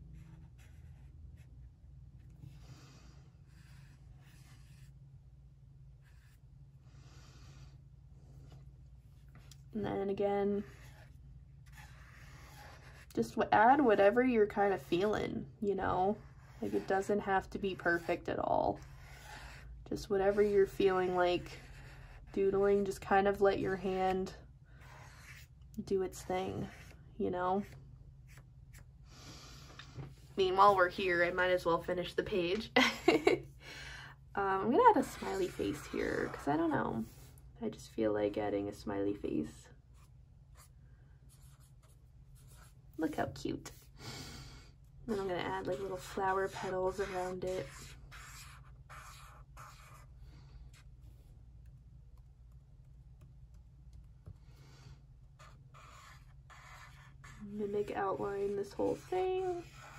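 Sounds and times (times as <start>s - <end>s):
low steady hum: 0.0s - 59.9s
marker scratching on paper: 0.2s - 1.5s, 3.5s - 5.0s, 6.0s - 6.4s, 10.6s - 15.1s, 16.1s - 23.0s, 24.8s - 25.5s, 26.4s - 27.0s, 34.9s - 37.3s, 41.3s - 43.1s, 45.1s - 51.3s, 55.4s - 59.9s.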